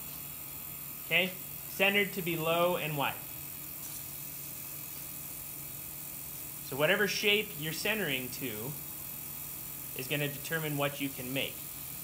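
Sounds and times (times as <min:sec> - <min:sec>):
potter's wheel motor humming: 0:00.0 - 0:12.0.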